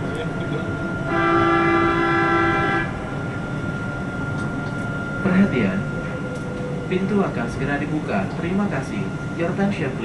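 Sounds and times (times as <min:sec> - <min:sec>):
train horn blast: 0:01.0 - 0:03.1.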